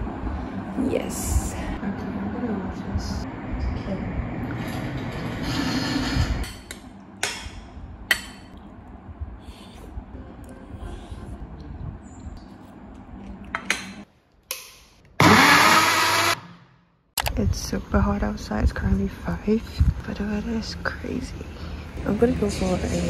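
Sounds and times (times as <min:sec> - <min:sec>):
blender motor whining: 0:15.2 - 0:16.5.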